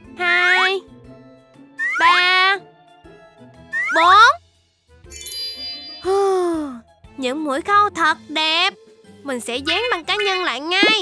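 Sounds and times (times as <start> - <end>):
cartoon sparkle chime: 5.1 - 6.7.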